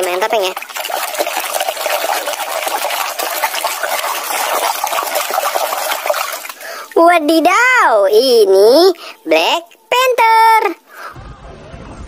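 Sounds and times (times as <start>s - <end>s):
hand scrubbing under water: 0.0s - 7.0s
water sloshing in a bucket: 0.0s - 8.1s.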